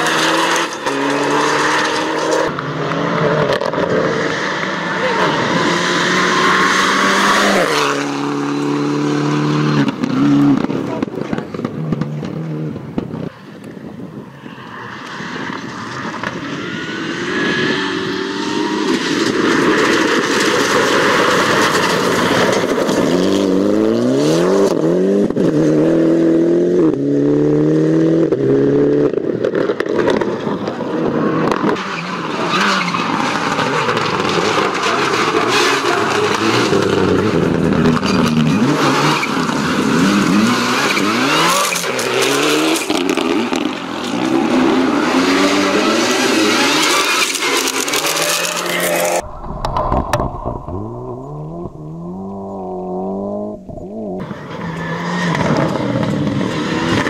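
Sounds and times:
rally car engine shifting gears: 0.0s - 13.6s, 15.0s - 57.0s
tyres on gravel: 45.8s - 56.3s.

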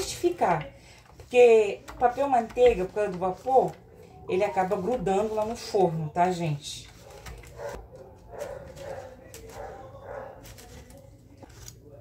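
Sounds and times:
knife scraping inside cake pan: 8.4s - 11.8s.

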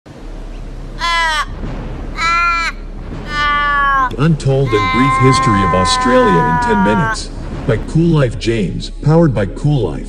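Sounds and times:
raven cawing: 1.0s - 7.3s.

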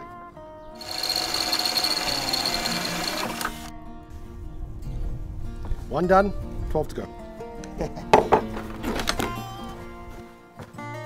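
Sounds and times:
cordless drill boring through metal: 0.8s - 3.7s.

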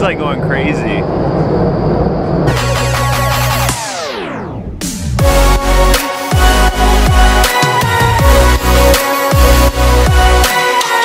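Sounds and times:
wind tunnel airflow rushing: 0.0s - 5.5s
electronic music: 2.4s - 11.0s.

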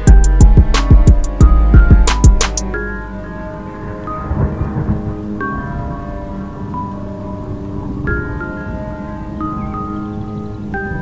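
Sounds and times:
bell-like melody notes: 0.0s - 11.0s
rain and thunder effect: 3.6s - 9.6s.

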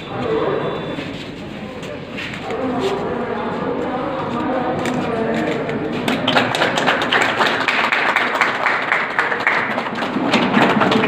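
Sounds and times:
group clapping: 4.8s - 11.0s.

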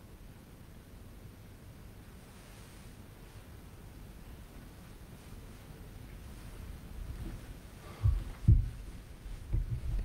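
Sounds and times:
dull thuds on cloth-covered table: 8.0s - 8.8s, 9.5s - 10.0s.

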